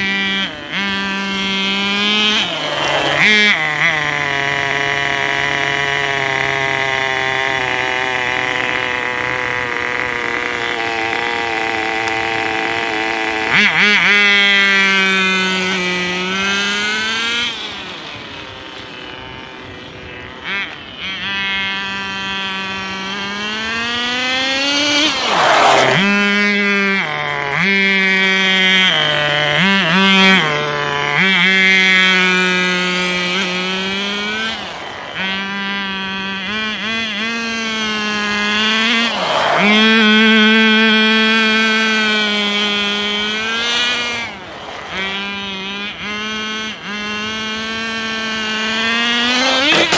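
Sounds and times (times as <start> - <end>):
rc car engine revving: 0.0 - 49.9.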